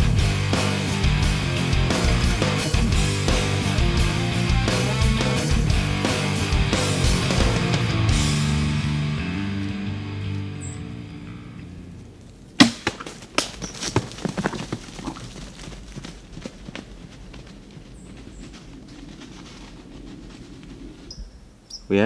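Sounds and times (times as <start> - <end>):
rock music: 0.0 - 12.0
arrow striking deer: 12.6 - 13.6
bow shot crack: 12.6 - 13.6
deer running through leaves: 12.8 - 21.1.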